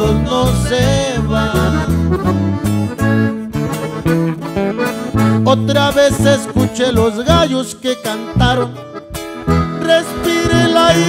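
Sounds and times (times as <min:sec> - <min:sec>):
bass line: 0:00.0 - 0:11.0
strummed and plucked guitar: 0:00.0 - 0:11.0.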